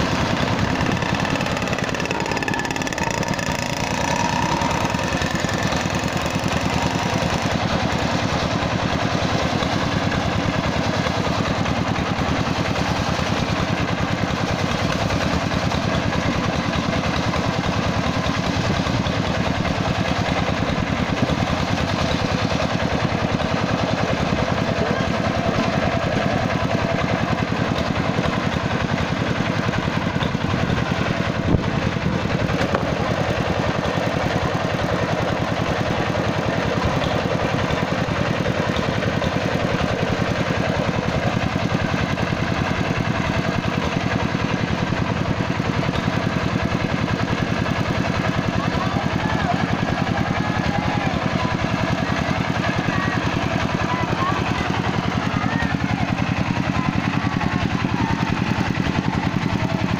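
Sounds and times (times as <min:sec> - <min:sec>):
circular saw cutting log: 0:00.0 - 0:23.8.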